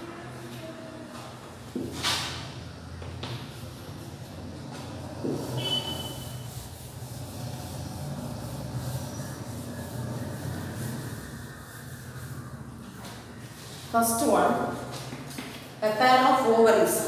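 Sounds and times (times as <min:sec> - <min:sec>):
steady low hum: 0:01.3 - 0:15.2
duster wiping chalkboard: 0:02.9 - 0:15.6.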